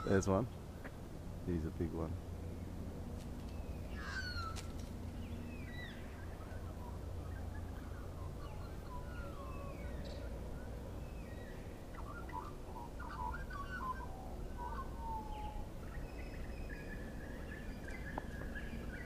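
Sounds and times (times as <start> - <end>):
low steady rumble: 0.0 - 19.0
magpies carolling: 2.6 - 19.0.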